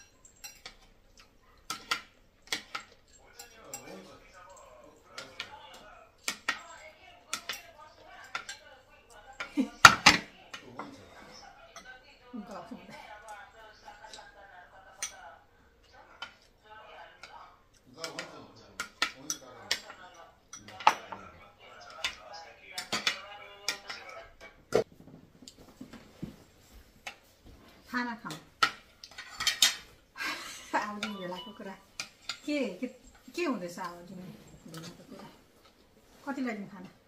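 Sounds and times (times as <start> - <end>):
cutlery clinking on plates: 0.0 - 24.9, 25.5 - 36.2.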